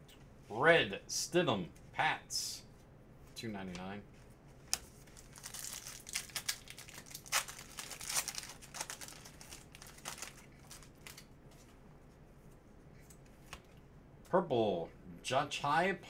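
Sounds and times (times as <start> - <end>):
foil wrapper tearing and crinkling: 4.7 - 11.3.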